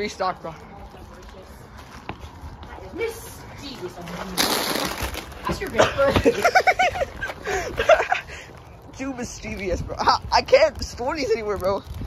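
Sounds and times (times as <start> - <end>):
footsteps on concrete steps: 0.0 - 4.5, 5.3 - 12.0.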